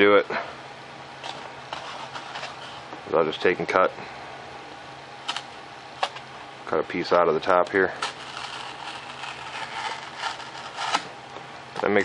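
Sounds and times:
knife blade cutting foam: 0:08.0 - 0:11.1.

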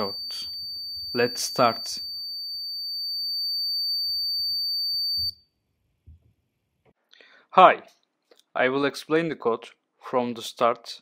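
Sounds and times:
electronic buzzer high-pitched tone: 0:00.0 - 0:05.4.

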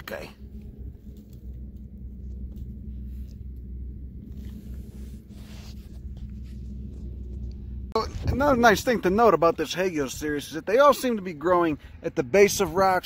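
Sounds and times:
wind rumble on microphone: 0:00.4 - 0:13.0.

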